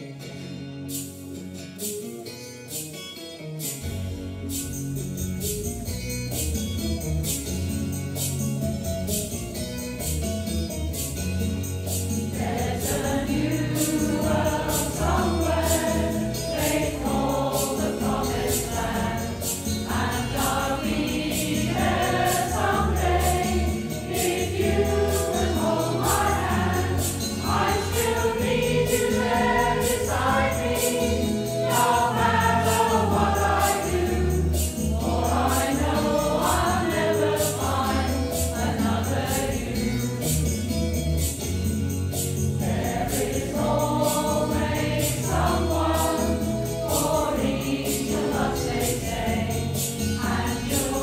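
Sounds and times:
accompaniment with steady beat: 3.6s - 51.0s
mixed choir singing: 12.3s - 40.1s, 42.6s - 51.0s.

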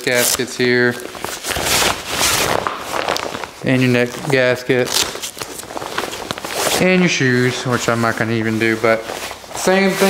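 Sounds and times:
nylon fabric rustling: 0.0s - 10.0s.

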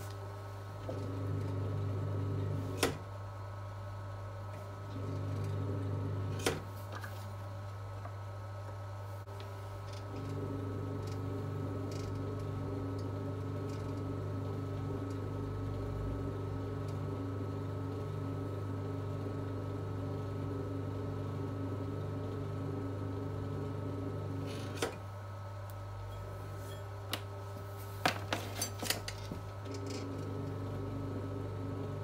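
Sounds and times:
potter's wheel motor hum: 0.0s - 27.2s, 28.1s - 32.0s.

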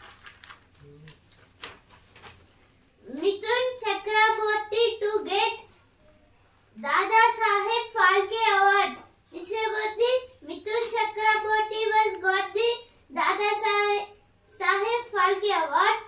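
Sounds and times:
boy reading aloud in sing-song: 3.0s - 6.0s, 6.7s - 16.0s.

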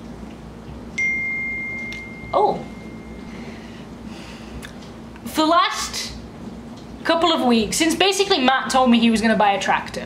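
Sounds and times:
bright chime ding: 1.0s - 3.4s.

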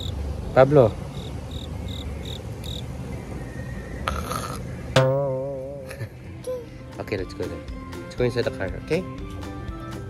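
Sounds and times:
insect chirping: 0.0s - 0.2s, 1.0s - 3.5s.

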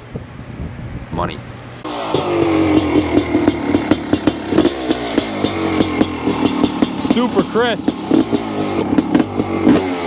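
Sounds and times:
two-stroke engine lumpy idle: 1.9s - 10.0s.

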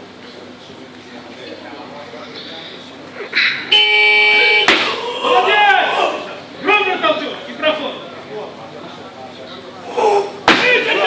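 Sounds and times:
loud held tone: 3.7s - 4.8s.

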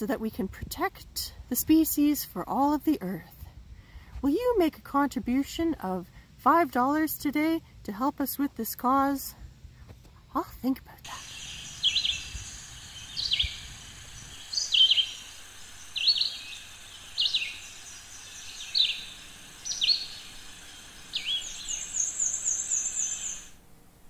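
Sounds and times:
songbird calling: 11.1s - 23.6s.

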